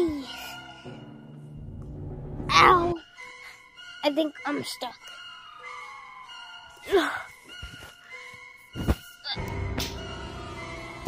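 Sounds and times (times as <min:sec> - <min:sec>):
background music sustained notes: 0:00.0 - 0:11.0.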